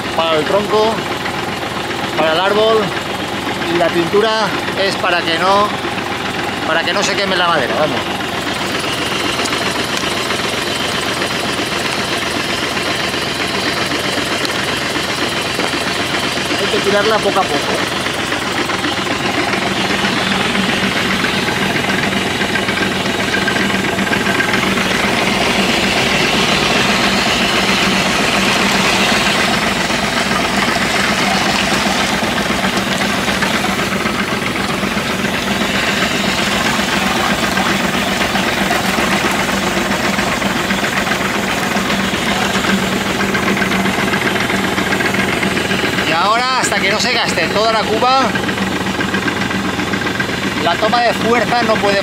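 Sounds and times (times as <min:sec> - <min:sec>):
tractor engine running: 0:00.0 - 0:52.0.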